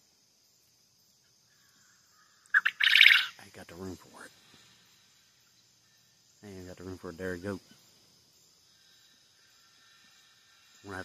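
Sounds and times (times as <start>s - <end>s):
faint insect buzz: 0.0s - 11.0s
sharp bird call: 2.5s - 3.4s.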